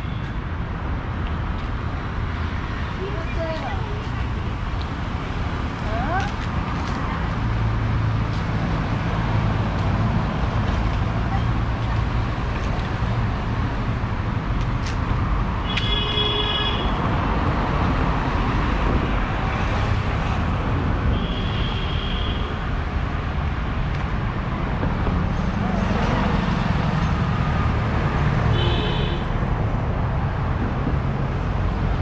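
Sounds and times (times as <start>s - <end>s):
rumble of passing traffic: 0.0s - 32.0s
vehicle horn honking: 15.7s - 17.0s, 28.5s - 29.3s.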